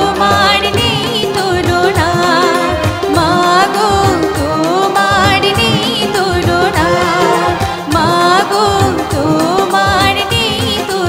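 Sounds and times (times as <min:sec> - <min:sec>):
keyboard accompaniment: 0:00.0 - 0:11.0
woman singing: 0:00.0 - 0:11.0.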